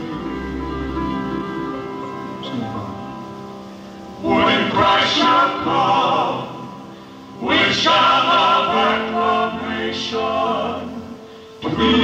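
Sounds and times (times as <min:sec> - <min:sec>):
live band playing: 0:00.0 - 0:04.4
voices singing with band: 0:04.2 - 0:12.0.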